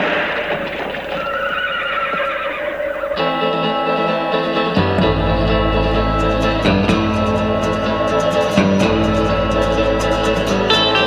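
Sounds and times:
horse whinnying: 0.0s - 3.5s.

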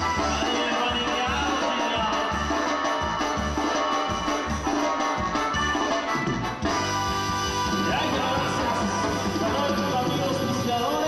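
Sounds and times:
latin dance music over loudspeakers: 0.0s - 11.0s.

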